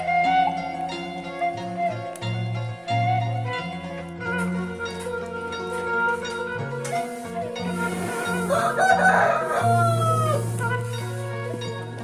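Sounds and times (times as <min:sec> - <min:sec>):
background music: 0:00.0 - 0:12.0
rooster crowing: 0:08.4 - 0:10.6.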